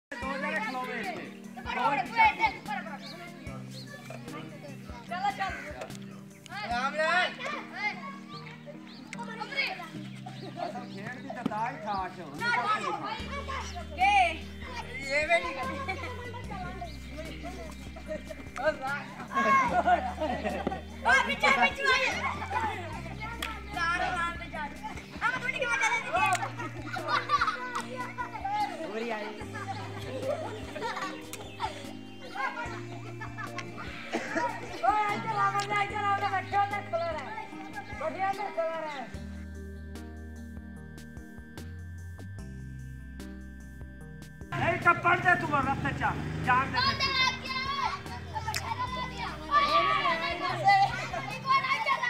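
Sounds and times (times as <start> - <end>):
boys shouting: 0.1 - 3.0, 12.2 - 39.1, 45.5 - 52.0
background music: 0.1 - 52.0.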